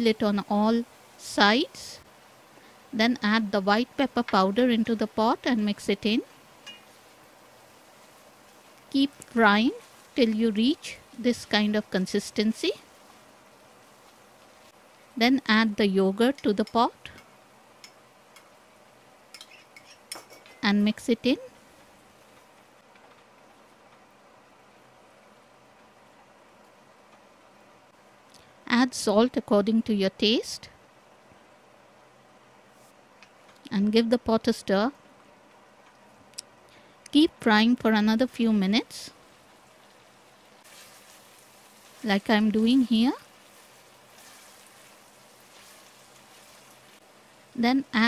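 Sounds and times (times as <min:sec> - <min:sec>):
meat sizzling and bubbling in a pot: 0:00.0 - 0:28.3, 0:35.1 - 0:48.0.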